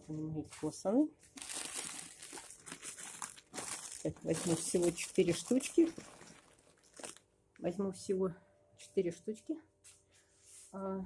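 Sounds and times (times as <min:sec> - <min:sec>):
plastic wrappers crinkling: 0:01.2 - 0:07.3.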